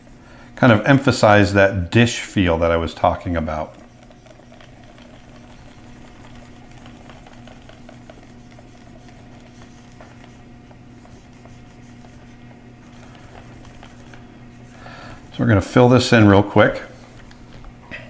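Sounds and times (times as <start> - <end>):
low electrical hum: 0.0 - 18.0
stylus scratching on drawing tablet: 2.5 - 17.2.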